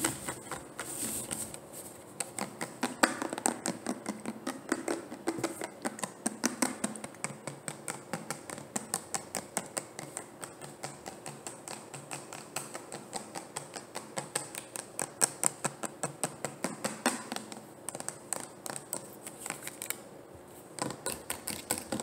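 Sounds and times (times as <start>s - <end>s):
fingernails tapping plastic bottle: 2.2s - 19.1s.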